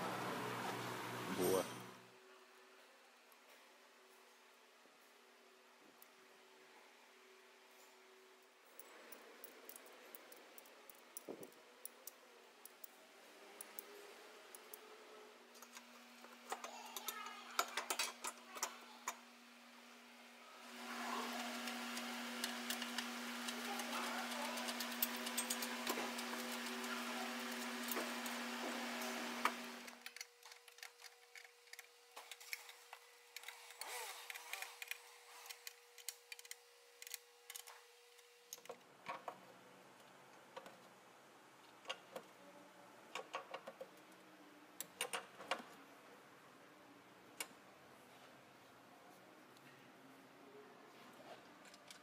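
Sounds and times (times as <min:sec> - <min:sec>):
metal parts and tools clicking: 0:16.5 - 0:18.7, 0:24.5 - 0:26.7, 0:30.0 - 0:37.8.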